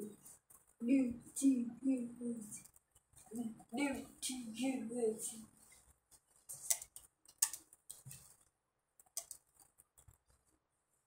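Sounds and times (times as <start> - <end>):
sharp clicks: 6.7 - 8.1, 9.0 - 10.2.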